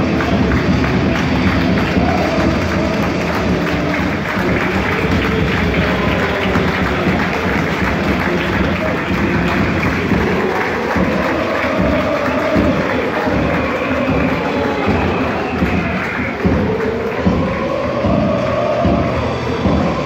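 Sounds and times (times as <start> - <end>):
crowd singing: 0.0 - 20.0
music: 0.0 - 20.0
stadium crowd cheering: 0.0 - 20.0.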